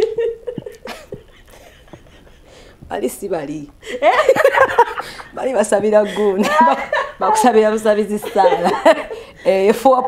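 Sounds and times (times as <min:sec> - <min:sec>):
women laughing: 0:00.0 - 0:02.5, 0:03.9 - 0:09.3.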